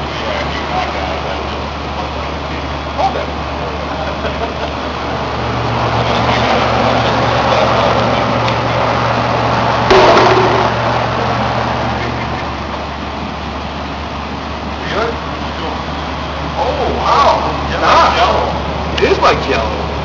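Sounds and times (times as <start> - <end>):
sharp knock: 9.9 - 11.0.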